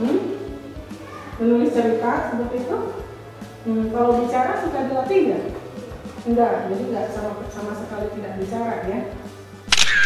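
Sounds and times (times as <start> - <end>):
background music: 0.0 - 10.0
woman speaking: 1.4 - 3.0, 3.6 - 5.6, 6.2 - 9.2.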